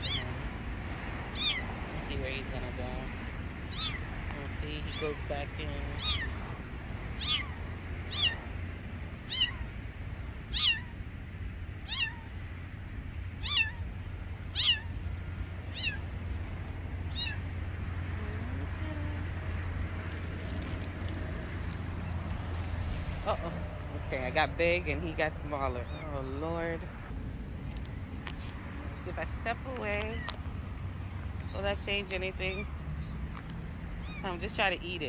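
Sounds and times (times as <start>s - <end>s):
kitten mewing: 0.0s - 0.3s, 3.7s - 4.1s, 6.0s - 6.4s, 7.2s - 8.4s, 9.3s - 9.7s, 10.5s - 11.0s, 11.8s - 12.3s, 13.4s - 13.9s, 14.5s - 15.0s, 15.7s - 16.0s, 17.1s - 17.5s.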